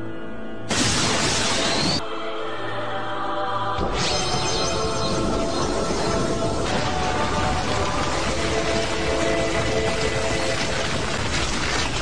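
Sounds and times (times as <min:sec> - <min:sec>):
background music with held tones: 0:00.0 - 0:00.8, 0:01.7 - 0:11.2
harsh shattering noise burst: 0:00.7 - 0:02.0, 0:03.8 - 0:12.0.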